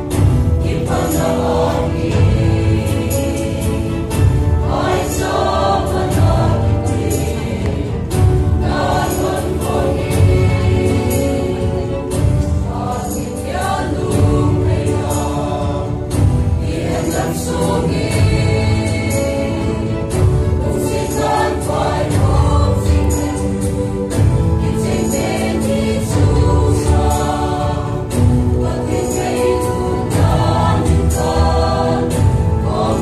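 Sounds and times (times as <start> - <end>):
mixed choir singing: 0.0 - 33.0.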